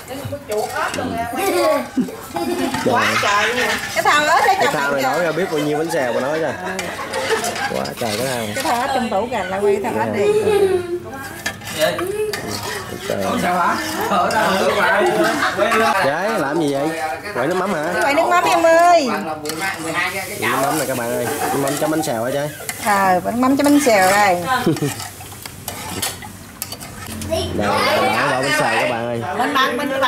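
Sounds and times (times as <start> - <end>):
liquid swishing in a pot: 0.0 - 29.6
metal ladle scraping steel bowl: 2.6 - 10.1, 11.2 - 28.9.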